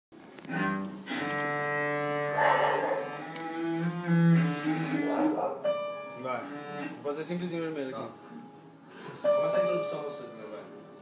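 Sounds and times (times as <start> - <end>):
cello bowing long notes: 0.4 - 7.6, 8.7 - 11.0.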